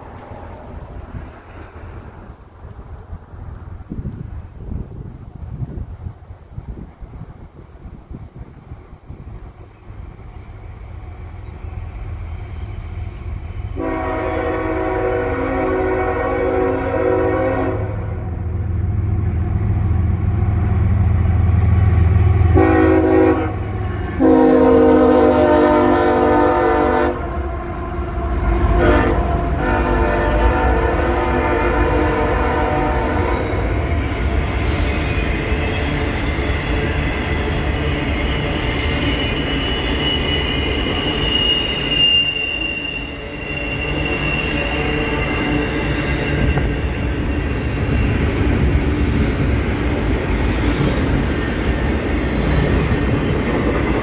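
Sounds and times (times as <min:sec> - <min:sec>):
wheels rumbling on rail: 0:00.0 - 0:54.0
train horn blasts: 0:13.7 - 0:18.5, 0:22.2 - 0:33.8, 0:39.4 - 0:47.3
high wheel squeal: 0:34.6 - 0:48.8.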